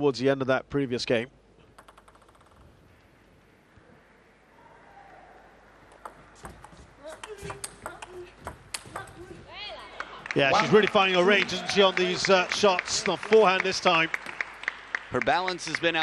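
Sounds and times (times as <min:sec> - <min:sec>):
table tennis ball clicking: 0:01.7 - 0:02.7, 0:05.9 - 0:09.2.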